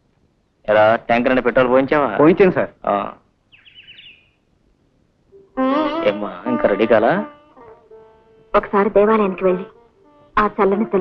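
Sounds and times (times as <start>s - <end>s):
small bird chirping: 3.5s - 4.5s.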